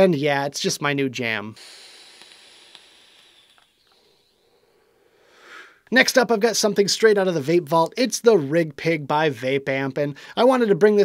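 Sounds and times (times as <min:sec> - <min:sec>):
vape draw hiss: 0:01.5 - 0:05.9.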